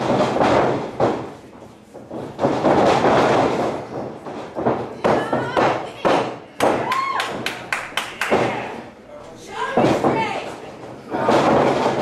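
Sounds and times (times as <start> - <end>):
bodies hitting the ring: 0.0 - 7.5, 8.2 - 8.8, 9.5 - 12.0.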